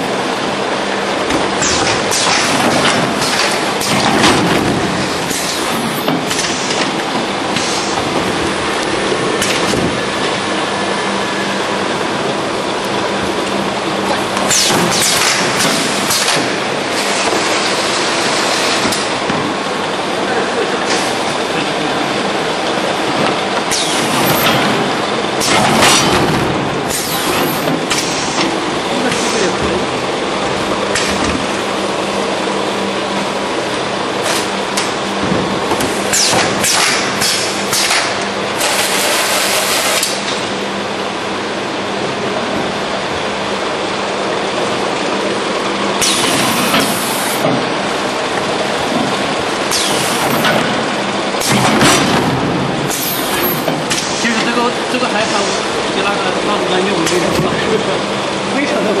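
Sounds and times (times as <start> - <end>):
rolling conveyor noise: 0.0 - 59.0
steady machine hum: 0.0 - 59.0.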